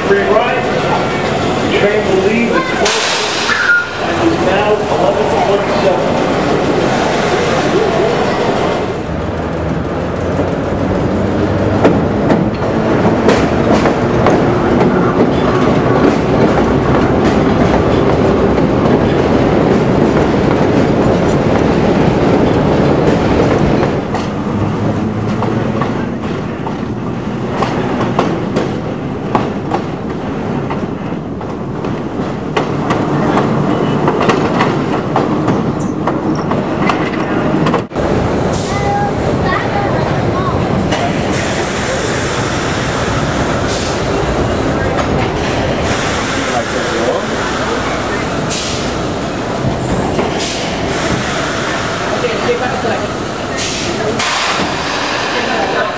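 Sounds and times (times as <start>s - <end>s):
train wheels clicking over rail joints: 9.2s - 37.9s, 40.8s - 55.6s.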